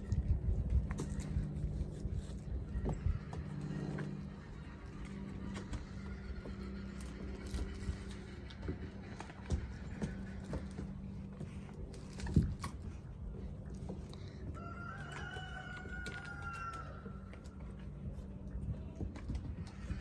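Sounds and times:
low steady hum: 0.0 - 20.0
puppies scuffling on wooden deck: 0.5 - 20.0
rooster crowing: 14.4 - 17.4.

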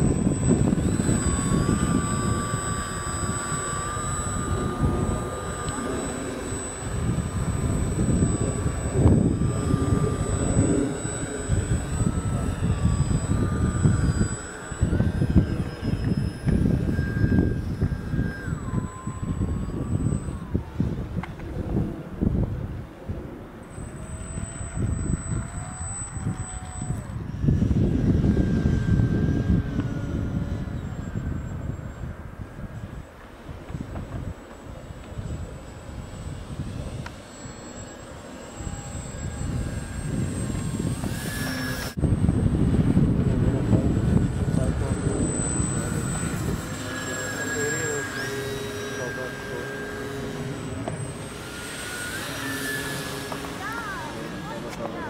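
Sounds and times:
model airplane motor whine: 0.0 - 55.0
wind buffeting microphone: 0.0 - 55.0.

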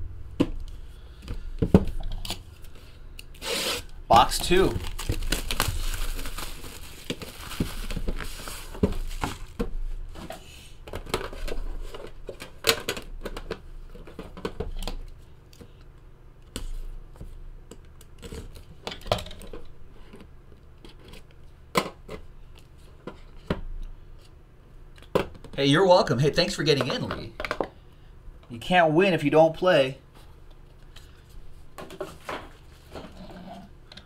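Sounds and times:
plastic wrap tearing and crinkling: 3.3 - 9.6.

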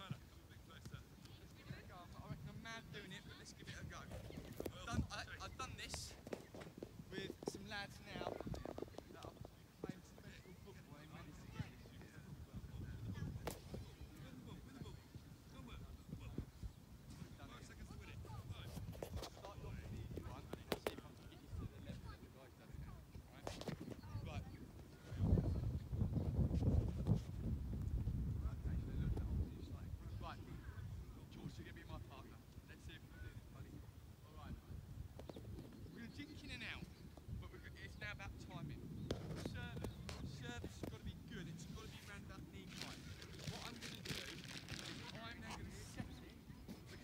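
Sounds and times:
microphone rustle: 0.0 - 47.0.

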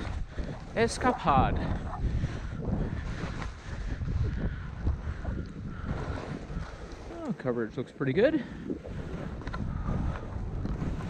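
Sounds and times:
skis sliding over snow: 0.0 - 1.4
wind buffeting microphone: 0.0 - 11.0.

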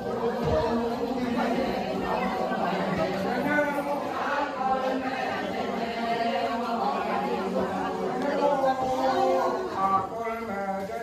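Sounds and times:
many voices overlapping: 0.0 - 11.0.

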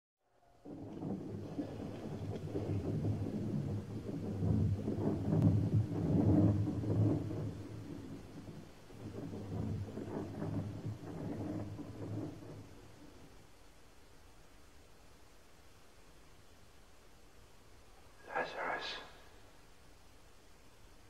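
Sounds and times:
deep rolling rumble: 0.6 - 14.0.

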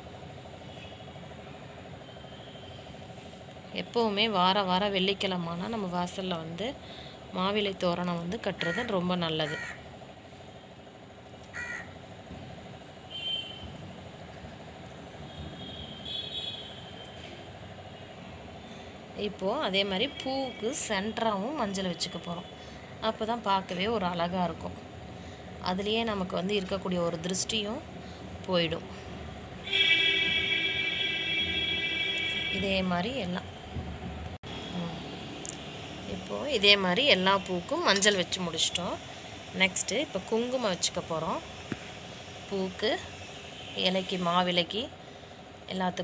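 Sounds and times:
faint steady hum: 0.0 - 46.0
crow cawing: 8.7 - 9.8, 11.5 - 12.0.

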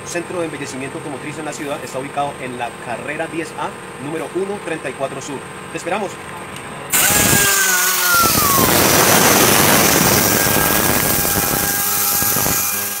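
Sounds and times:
compressed air hissing: 6.9 - 13.0
falling whine: 6.9 - 13.0.

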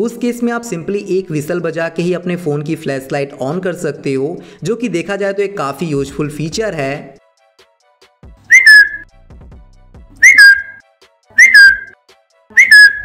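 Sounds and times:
person whistling short swoops: 8.5 - 9.0, 10.2 - 10.8, 11.4 - 13.0.

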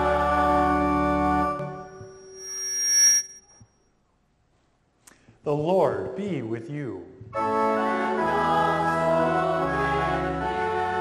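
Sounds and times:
congregation singing: 0.0 - 1.7, 7.4 - 11.0
church organ chord: 0.0 - 2.0, 7.4 - 11.0.

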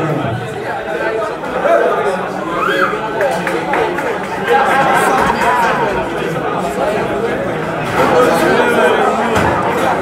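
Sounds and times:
spectators chattering: 0.0 - 10.0.

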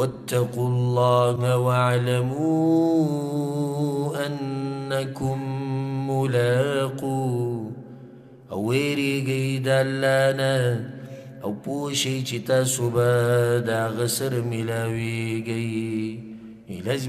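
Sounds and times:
man chanting verse: 0.0 - 7.8, 8.5 - 17.0.

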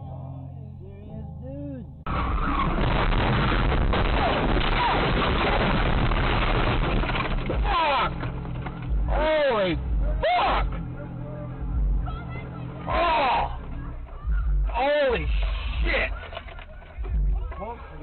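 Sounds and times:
car crashing and scraping: 2.1 - 9.8
glass breaking: 2.3 - 8.9
loud yells: 4.0 - 5.2, 7.6 - 8.2, 12.9 - 13.6.

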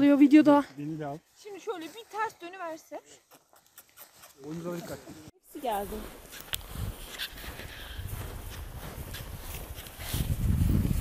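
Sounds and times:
footsteps in snow: 0.0 - 11.0.

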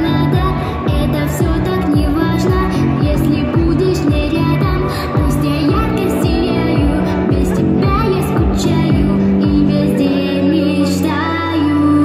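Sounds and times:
backing track with bass: 0.0 - 12.0
girl singing pop song: 0.0 - 12.0.

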